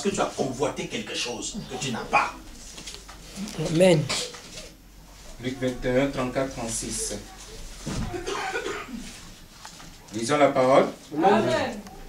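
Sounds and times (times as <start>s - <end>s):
person coughing: 8.1s - 9.0s.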